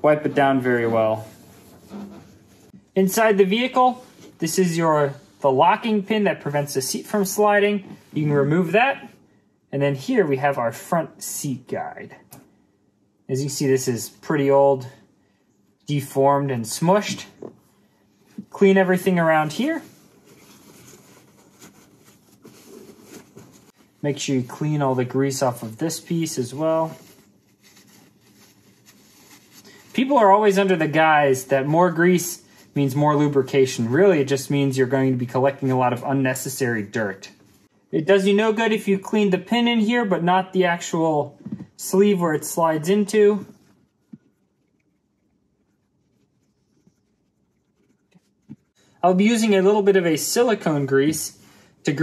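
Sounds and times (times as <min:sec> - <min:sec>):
paper towel rubbing: 0:00.0 - 0:05.6, 0:18.2 - 0:36.1, 0:45.2 - 0:48.8.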